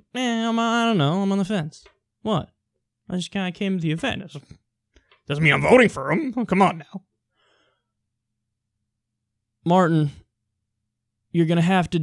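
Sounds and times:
faint breath: 0:07.3 - 0:08.0.

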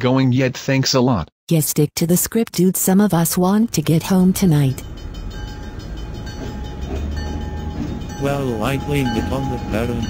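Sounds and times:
locomotive rumbling along track: 0:03.4 - 0:10.0.

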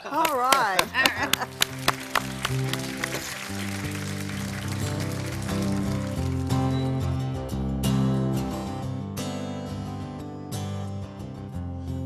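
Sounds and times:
acoustic guitar strumming chords: 0:01.4 - 0:12.0.

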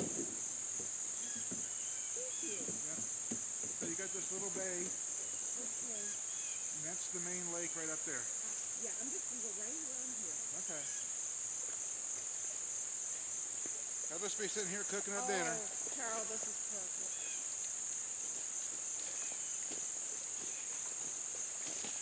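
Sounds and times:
high-pitched insect chorus: 0:00.0 - 0:22.0
faint talking: 0:14.8 - 0:17.1.

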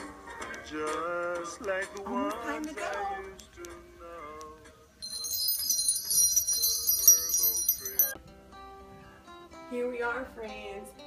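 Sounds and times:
small bells jingling: 0:05.0 - 0:08.2.

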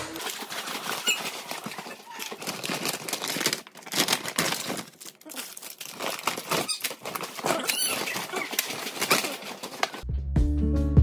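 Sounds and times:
paper bags rustling: 0:00.0 - 0:10.0
plastic pouches crinkling: 0:00.0 - 0:10.0.

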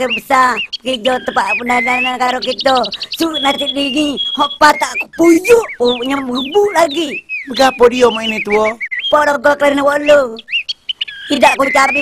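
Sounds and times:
drawn-out steady voice: 0:00.0 - 0:10.5
high bird chirps: 0:00.0 - 0:12.0.

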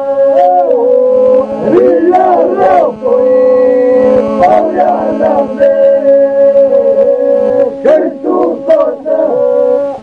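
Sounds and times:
low vocal drone: 0:00.0 - 0:10.0
men singing polyphony: 0:00.0 - 0:10.0.

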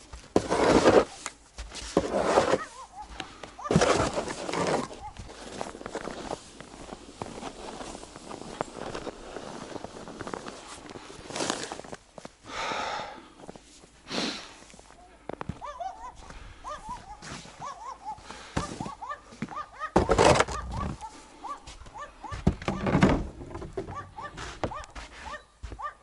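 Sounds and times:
snow shovel scraping wooden boards: 0:00.0 - 0:02.9, 0:03.6 - 0:12.0, 0:20.0 - 0:21.0
footsteps crunching in snow: 0:00.0 - 0:12.4, 0:13.4 - 0:19.7, 0:23.9 - 0:26.0.

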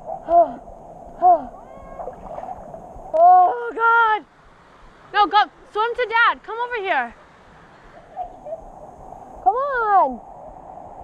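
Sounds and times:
river water rushing: 0:01.1 - 0:10.0.

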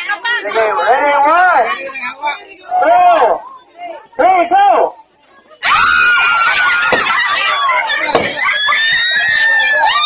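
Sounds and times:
people screaming and shrieking: 0:05.6 - 0:10.0.

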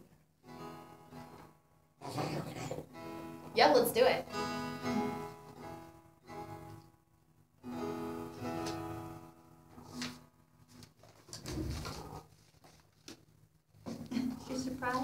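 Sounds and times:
acoustic guitar strumming: 0:00.0 - 0:10.8.

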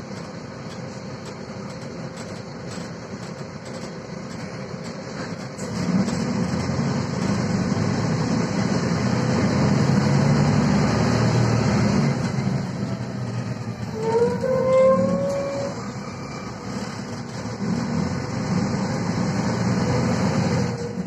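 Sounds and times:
bus diesel engine drone: 0:00.0 - 0:21.0.

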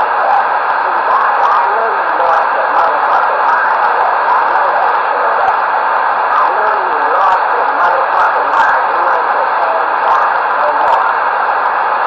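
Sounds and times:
faint garbled radio voices: 0:00.0 - 0:12.0
radio static hissing: 0:00.0 - 0:12.0.

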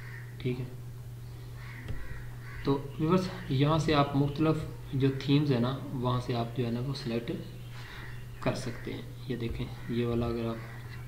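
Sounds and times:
low electrical hum: 0:00.0 - 0:11.0
man talking: 0:02.7 - 0:07.5, 0:08.4 - 0:10.8.

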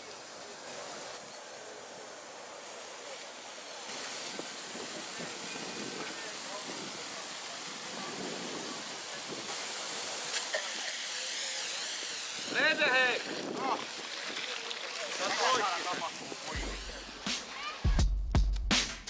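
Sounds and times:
water jetting from a hose: 0:00.0 - 0:17.8.

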